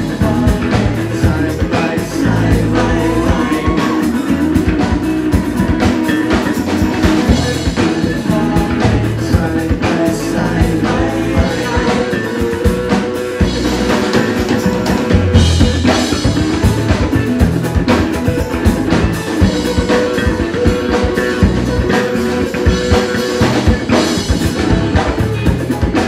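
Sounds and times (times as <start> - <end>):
drum kit: 0.0 - 26.0
electric guitars: 0.0 - 26.0.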